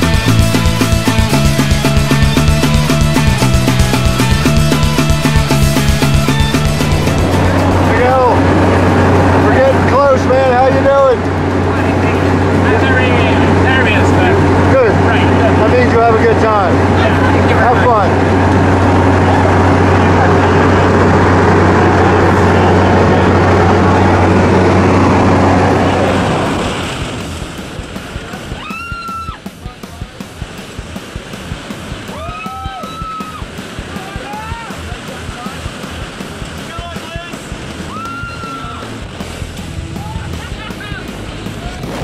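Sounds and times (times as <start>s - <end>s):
plane engine drone: 0.0s - 42.0s.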